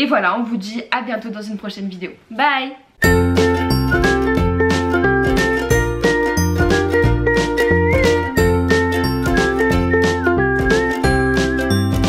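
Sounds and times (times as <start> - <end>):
short high chiming notes: 3.0 - 4.2
bouncing bass line: 3.0 - 12.0
bright melody: 3.0 - 12.0
upbeat music with steady beat: 3.0 - 12.0.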